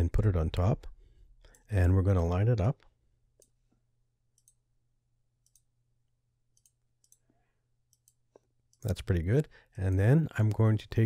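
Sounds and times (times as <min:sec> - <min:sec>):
computer mouse clicks: 0:04.4 - 0:04.6, 0:05.4 - 0:05.7, 0:06.5 - 0:08.9.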